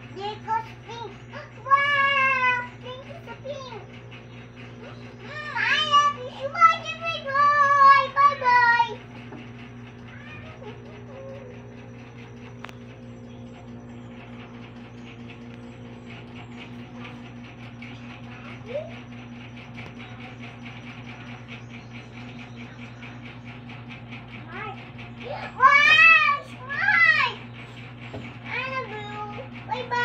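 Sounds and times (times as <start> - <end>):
low pulsing hum: 0.0 - 30.0.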